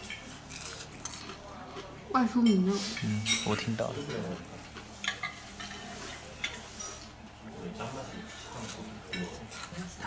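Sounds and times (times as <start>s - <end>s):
person chewing crispy food: 0.0s - 2.1s.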